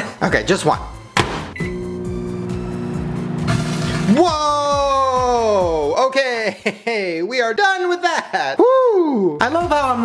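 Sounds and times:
microwave door shutting: 0:01.2 - 0:02.6
microwave oven humming: 0:01.6 - 0:04.1.

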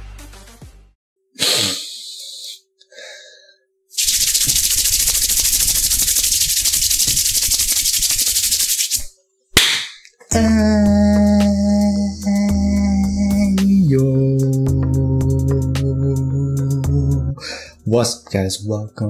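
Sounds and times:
hands rubbing together: 0:04.0 - 0:09.1.

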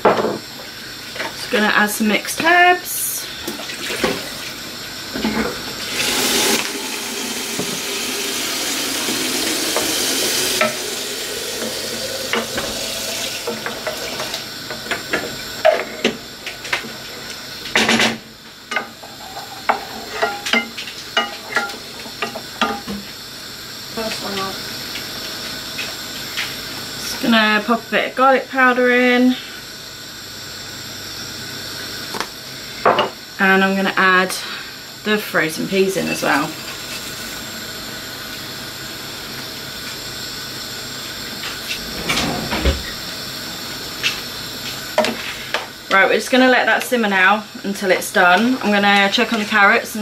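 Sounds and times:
low sizzle: 0:04.1 - 0:17.8
loud steady hiss: 0:04.6 - 0:15.4.

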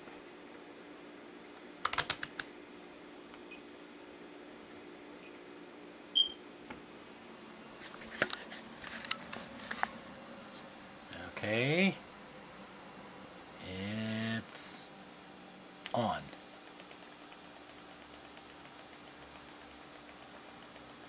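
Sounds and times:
faint steady hum: 0:00.0 - 0:21.0.

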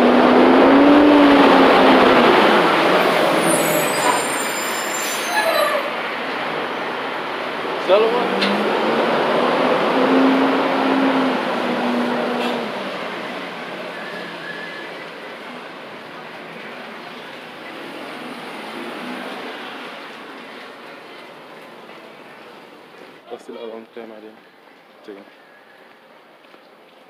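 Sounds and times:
street background: 0:00.0 - 0:27.0
tyres on wet street: 0:00.0 - 0:27.0.

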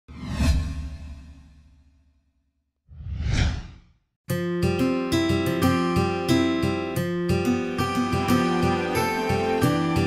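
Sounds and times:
whoosh transition effect: 0:02.9 - 0:03.9.

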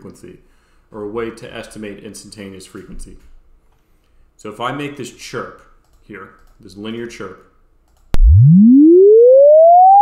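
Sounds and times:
rising sine tone chirp: 0:08.2 - 0:10.0.

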